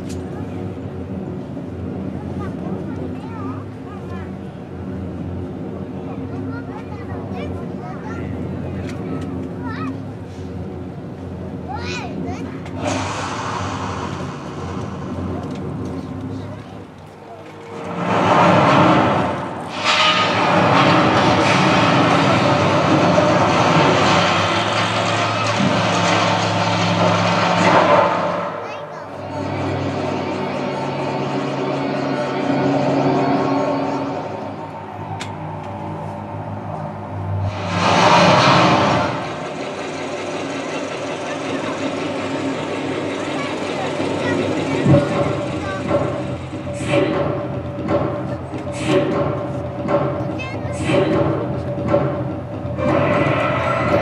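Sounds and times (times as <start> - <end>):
crowd talking: 0.0 - 19.7, 20.4 - 38.1, 39.1 - 54.0
machine-like sound effects: 0.0 - 54.0
steady low hum: 0.0 - 54.0
loud whooshing swell: 12.8 - 16.5, 17.6 - 43.4.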